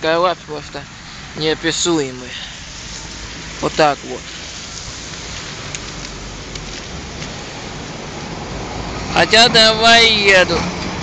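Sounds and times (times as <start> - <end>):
wet snow hissing on slush: 1.0 - 8.1.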